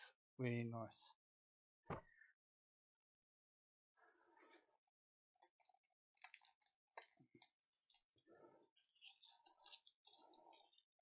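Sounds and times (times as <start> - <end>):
plastic wrapper crinkling: 5.4 - 10.8.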